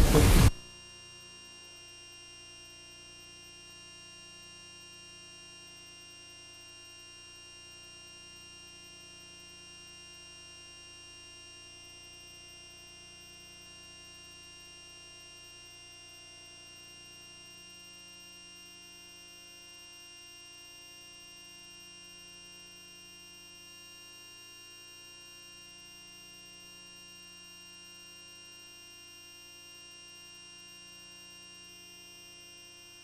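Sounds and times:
electronic hum with high tones: 0:00.0 - 0:33.0.

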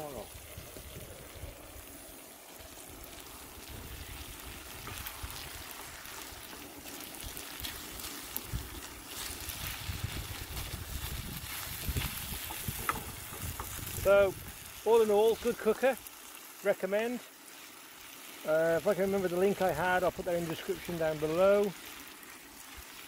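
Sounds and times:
burner rushing hiss: 0:00.0 - 0:23.0
food sizzling in a pan: 0:00.0 - 0:23.0.

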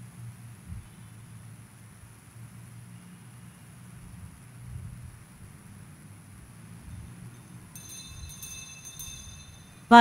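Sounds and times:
small metal bells ringing: 0:07.0 - 0:10.0.

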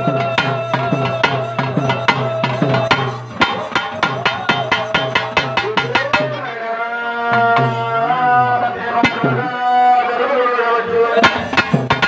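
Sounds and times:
drum beaten with a stick: 0:00.0 - 0:06.6, 0:07.3 - 0:08.3, 0:09.0 - 0:09.9, 0:11.2 - 0:12.0.

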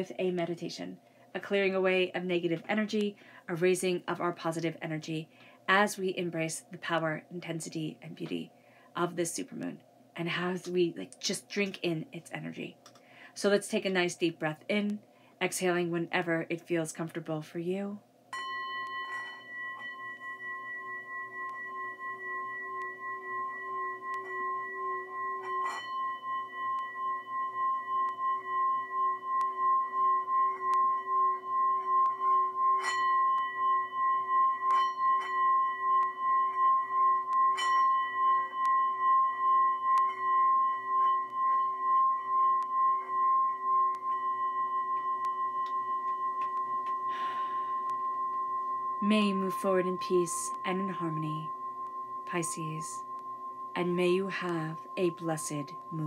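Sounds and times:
singing bowl ringing: 0:00.0 - 0:11.2, 0:18.3 - 0:56.0.

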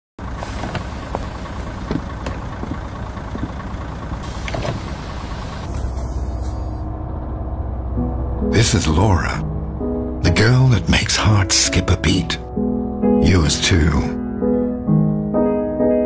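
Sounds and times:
bus engine idling: 0:00.2 - 0:14.1
pneumatic door air hiss: 0:04.2 - 0:06.8.

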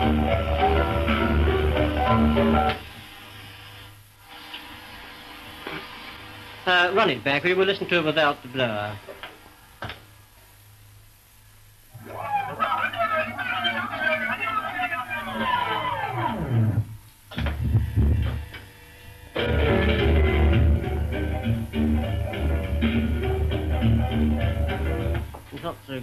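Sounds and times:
music with pitch sliding down: 0:00.0 - 0:02.8, 0:15.6 - 0:16.9, 0:19.4 - 0:25.2
low hum: 0:11.9 - 0:25.3.

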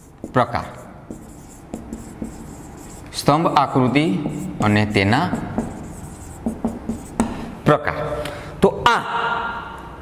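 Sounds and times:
marker pen writing on whiteboard: 0:00.0 - 0:07.5
man speaking: 0:00.3 - 0:00.9, 0:03.1 - 0:05.6.

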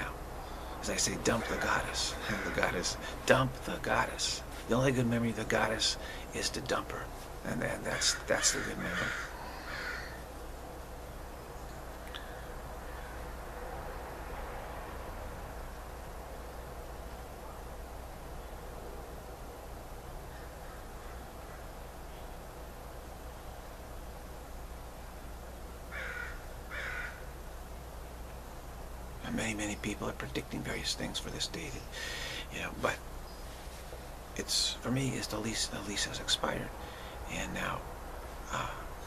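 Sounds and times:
harsh bird calls: 0:00.0 - 0:10.4, 0:25.9 - 0:27.3, 0:29.3 - 0:33.6
steady low hum: 0:00.0 - 0:39.0.

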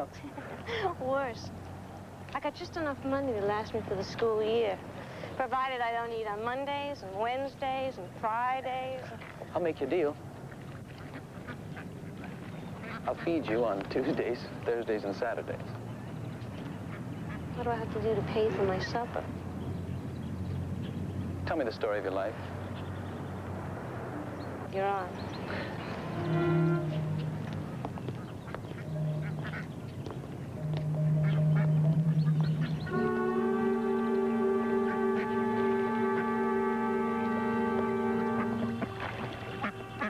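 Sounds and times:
ducks quacking faintly: 0:09.0 - 0:19.3, 0:24.0 - 0:40.0
steady low hum: 0:22.5 - 0:40.0
low held tone: 0:25.9 - 0:27.8, 0:28.8 - 0:29.7, 0:30.4 - 0:40.0.

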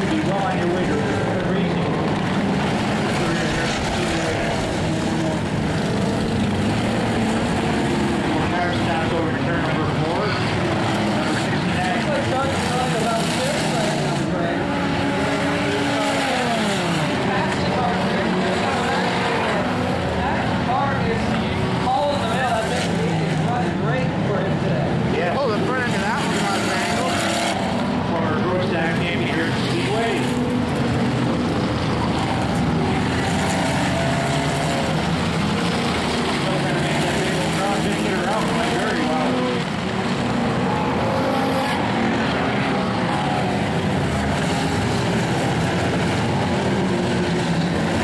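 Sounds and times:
race car engines revving: 0:00.0 - 0:48.0.

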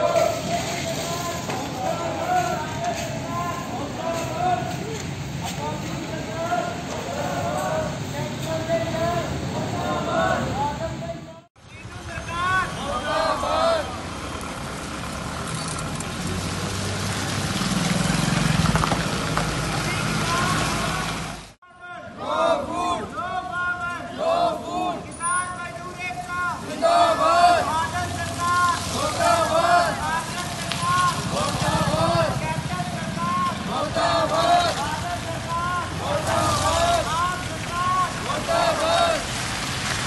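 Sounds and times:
vehicle passing on wet road: 0:00.0 - 0:11.3, 0:12.4 - 0:21.6, 0:24.2 - 0:40.0
voices: 0:00.0 - 0:14.3, 0:19.8 - 0:39.4
motorcycle engine passing by: 0:14.6 - 0:21.0, 0:29.0 - 0:35.3.

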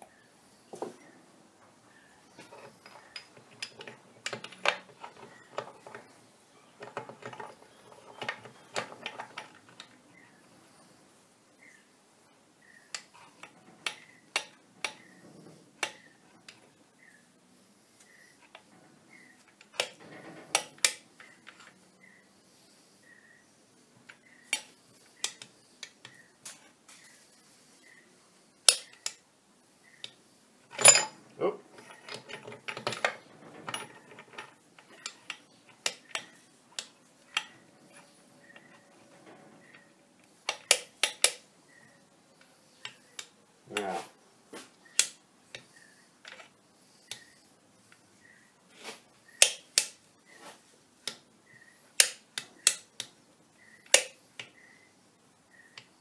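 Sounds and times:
metal gears clinking: 0:30.7 - 0:35.2.

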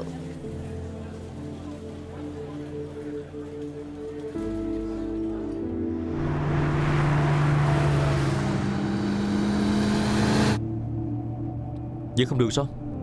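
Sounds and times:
music with long held notes: 0:00.0 - 0:13.0
rush of vehicle noise: 0:05.8 - 0:10.6.

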